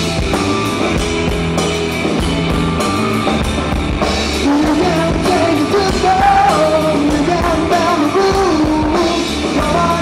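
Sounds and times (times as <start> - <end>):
rock band playing live: 0.0 - 10.0
person singing: 4.4 - 10.0.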